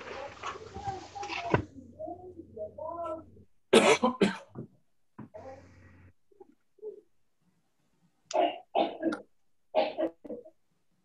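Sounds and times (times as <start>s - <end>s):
person coughing: 3.7s - 4.6s, 8.3s - 10.5s.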